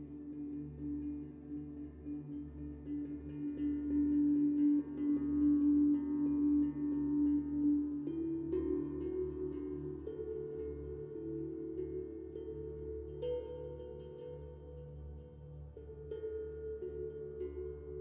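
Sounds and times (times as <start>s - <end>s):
soft ambient music: 0.0s - 18.0s.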